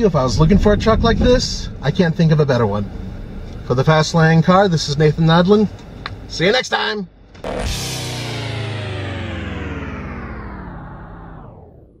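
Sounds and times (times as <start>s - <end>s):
rock music ending on held chord: 7.4s - 11.4s.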